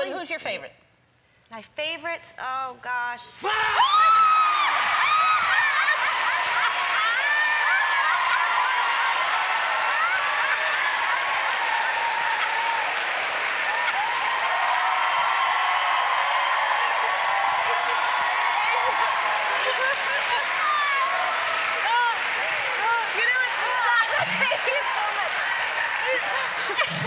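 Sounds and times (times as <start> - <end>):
audience laughing and applauding: 4.3 - 27.0
woman shrieking laughter: 5.0 - 8.6.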